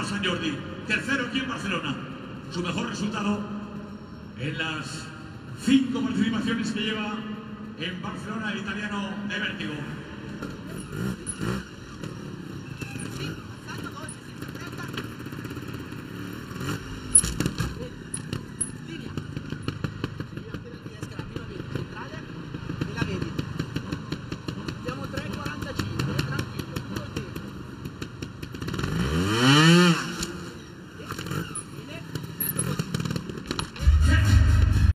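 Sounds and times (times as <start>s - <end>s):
motorcycle engine revving: 9.5s - 34.9s.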